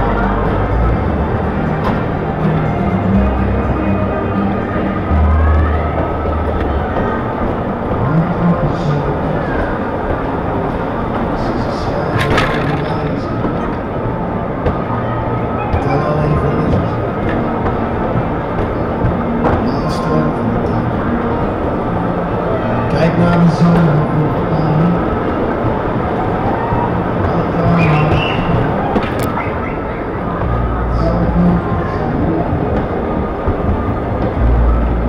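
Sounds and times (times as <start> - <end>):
loud fairground music: 0.0 - 35.0
voices: 0.0 - 35.0.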